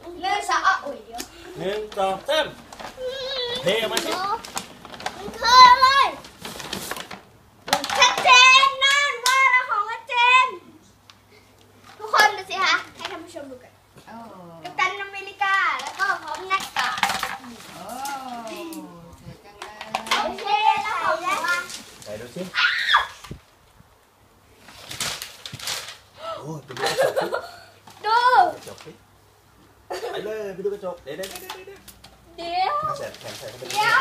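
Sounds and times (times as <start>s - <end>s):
paper bag rustling: 1.6s - 8.5s, 15.5s - 18.9s, 19.6s - 23.5s, 24.6s - 26.1s, 32.7s - 34.0s
child calling out: 3.0s - 4.4s, 22.5s - 23.2s.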